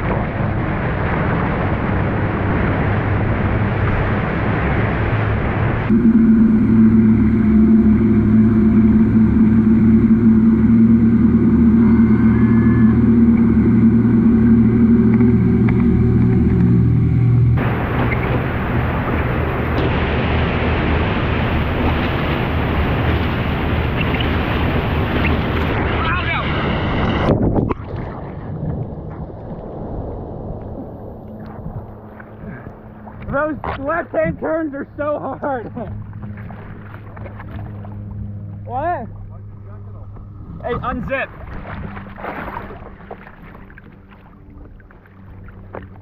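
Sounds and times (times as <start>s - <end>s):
rush of water and wind: 0.0s - 39.4s, 40.4s - 46.0s
boat wake churning: 0.0s - 46.0s
outboard motor running: 0.0s - 46.0s
water sloshing: 35.4s - 46.0s.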